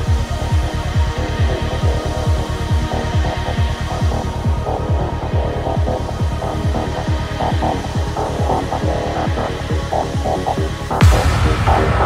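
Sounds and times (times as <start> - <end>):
trance music: 0.0 - 12.0.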